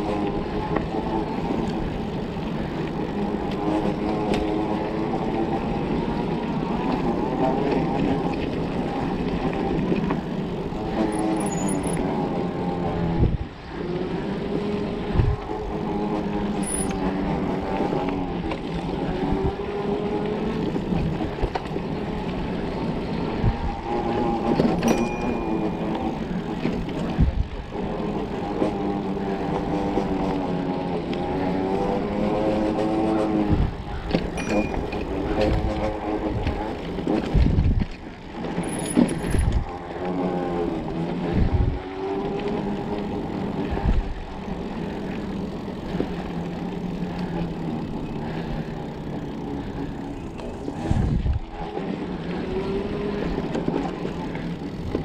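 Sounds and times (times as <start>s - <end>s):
electric bike motor whining: 0.0s - 55.0s
tyre noise on dirt trail: 0.0s - 55.0s.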